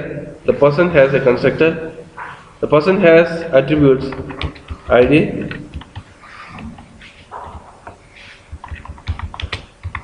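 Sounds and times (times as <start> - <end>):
keyboard typing: 3.6 - 10.0.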